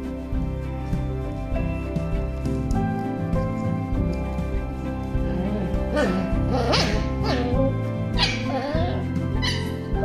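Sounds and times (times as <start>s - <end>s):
background music: 0.0s - 10.0s
puppies yipping and whining: 5.2s - 10.0s.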